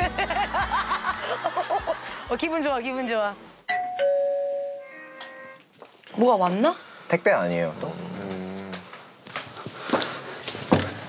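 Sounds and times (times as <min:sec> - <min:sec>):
electronic doorbell chime: 0:03.7 - 0:05.6.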